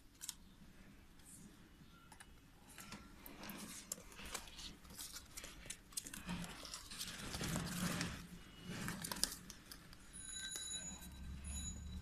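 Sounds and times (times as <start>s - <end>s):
kittens scratching and clawing: 2.8s - 10.6s.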